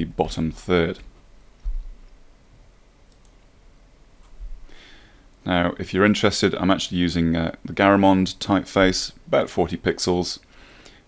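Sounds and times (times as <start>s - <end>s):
low steady hiss: 0.0s - 11.0s
computer mouse clicks: 3.1s - 3.4s.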